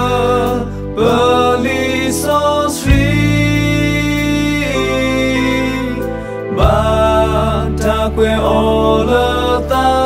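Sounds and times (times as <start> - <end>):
backing track with low bass: 0.0 - 10.0
man singing: 0.0 - 10.0.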